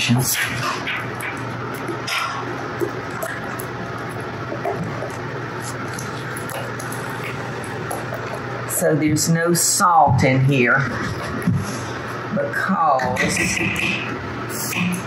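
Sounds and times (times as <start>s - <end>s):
wooden spoon stirring batter in bowl: 0.4s - 8.6s.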